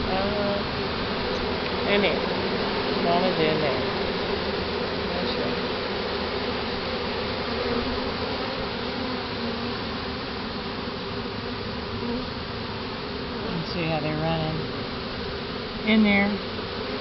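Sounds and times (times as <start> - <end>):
bee swarm buzzing: 0.0 - 17.0.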